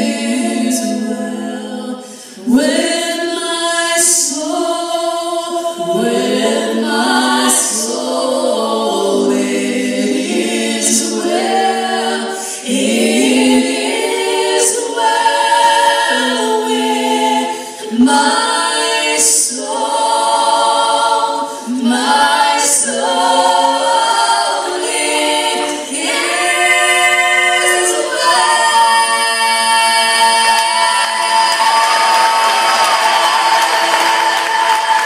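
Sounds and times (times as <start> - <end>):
women singing hymn in harmony: 0.0 - 35.0.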